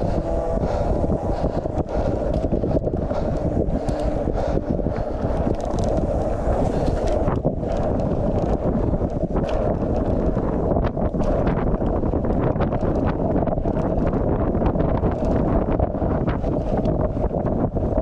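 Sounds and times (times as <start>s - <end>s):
clatters and rattles: 0.0s - 18.0s
wind buffeting microphone: 0.0s - 18.0s.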